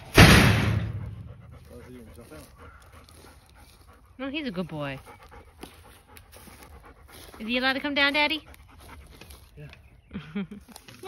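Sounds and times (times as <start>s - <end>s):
dog panting: 0.9s - 9.6s.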